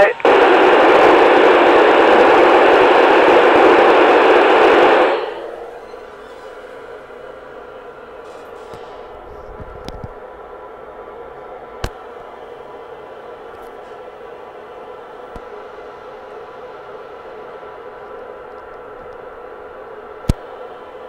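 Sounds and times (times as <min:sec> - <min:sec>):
radio static hiss: 0:00.0 - 0:05.5
faint hum: 0:00.0 - 0:21.0.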